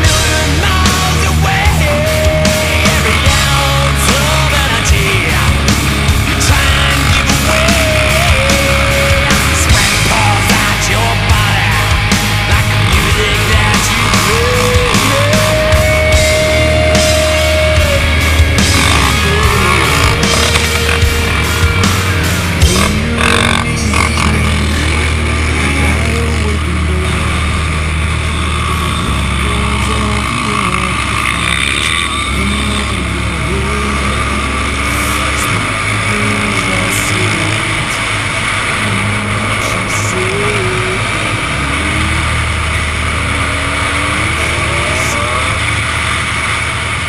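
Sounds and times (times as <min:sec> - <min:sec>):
atv engines revving: 0:00.0 - 0:47.0
steady low rumble: 0:00.0 - 0:47.0.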